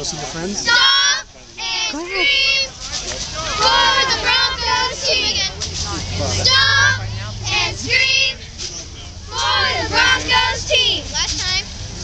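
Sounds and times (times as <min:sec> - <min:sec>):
girls chanting a cheer: 0:00.6 - 0:02.7, 0:03.4 - 0:05.6, 0:06.4 - 0:08.4, 0:09.3 - 0:11.7.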